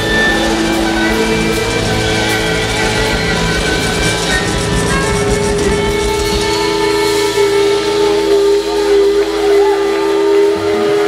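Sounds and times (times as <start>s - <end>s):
band sustained chord ringing: 0.0s - 11.0s
crowd voices: 0.0s - 11.0s.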